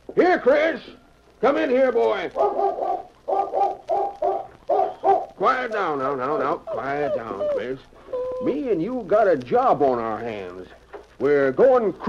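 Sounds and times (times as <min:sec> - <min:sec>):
hound barking excitedly: 0:02.3 - 0:05.4.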